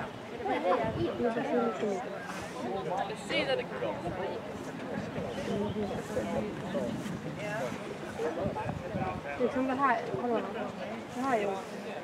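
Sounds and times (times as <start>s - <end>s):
people talking indistinctly: 0.0s - 12.0s
wind rumbling on microphone: 0.7s - 1.2s, 4.0s - 10.3s.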